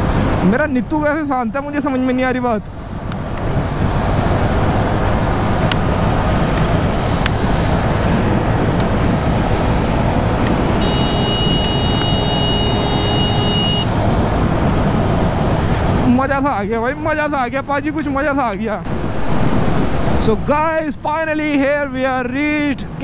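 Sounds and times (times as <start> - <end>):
wind and road noise: 0.0 - 23.0
motorcycle engine cruising: 2.6 - 15.9.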